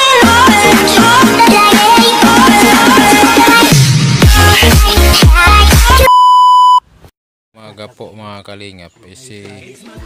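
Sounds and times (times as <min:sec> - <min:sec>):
test-tone beep: 0:06.1 - 0:06.8.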